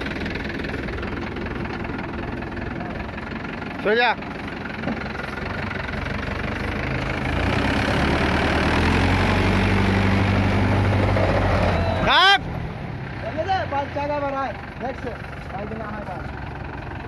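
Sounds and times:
tractor diesel engine revving: 0.0 - 17.0
loud shout: 11.5 - 12.5.

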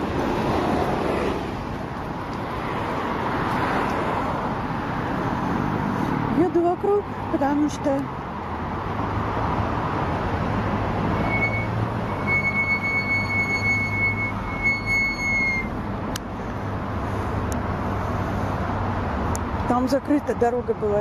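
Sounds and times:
thin high whine: 11.1 - 15.7.

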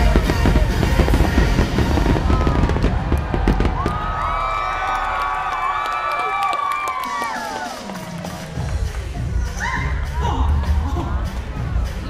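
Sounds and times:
fireworks bangs and crackling: 0.0 - 4.7
crowd cheering and whooping: 1.8 - 11.8.

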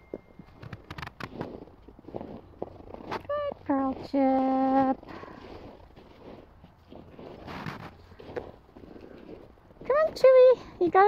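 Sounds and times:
footsteps crunching in snow: 0.1 - 10.6.

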